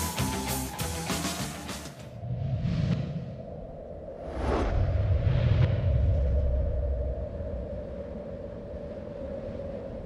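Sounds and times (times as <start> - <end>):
deep rumble: 2.2 - 10.0.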